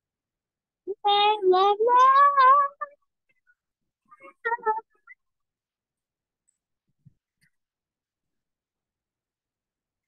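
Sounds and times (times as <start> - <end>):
high young voice singing: 0.9 - 3.0.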